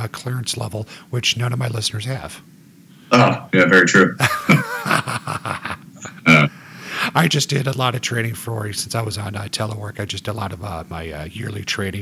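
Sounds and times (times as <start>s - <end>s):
men laughing: 4.2s - 6.5s.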